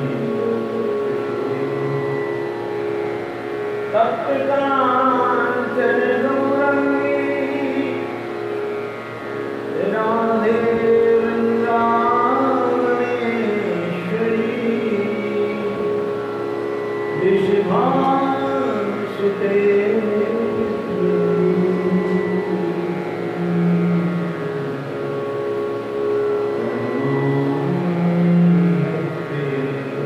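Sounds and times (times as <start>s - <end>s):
steady drone: 0.0s - 30.0s.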